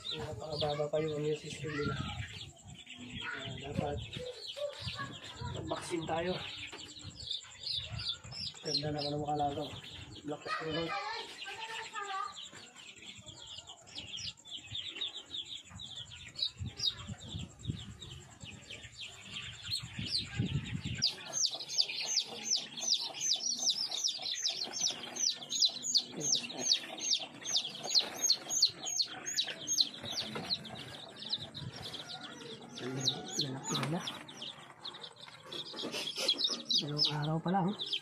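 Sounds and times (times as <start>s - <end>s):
chicks peeping: 0.0s - 38.0s.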